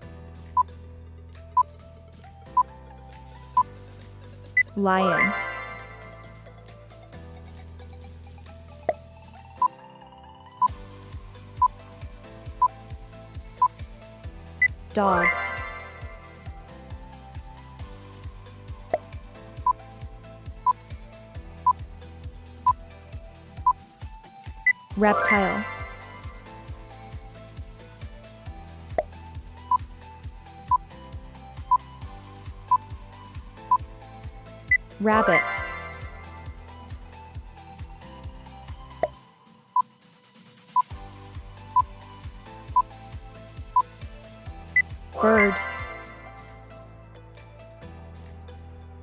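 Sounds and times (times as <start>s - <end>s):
background music with steady beat: 0.0s - 49.0s
countdown timer beeps: 4.6s - 6.4s, 14.6s - 16.5s, 24.7s - 26.6s, 34.7s - 36.7s, 44.8s - 46.5s.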